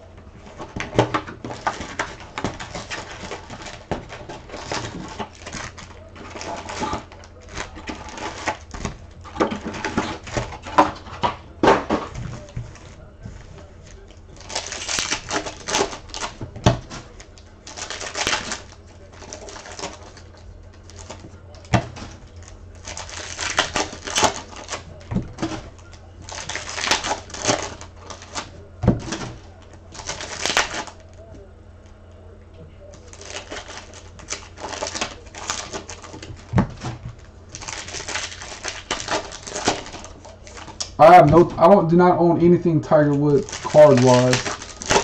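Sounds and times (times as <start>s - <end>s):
paper cards rustling and sliding: 42.9s - 45.0s.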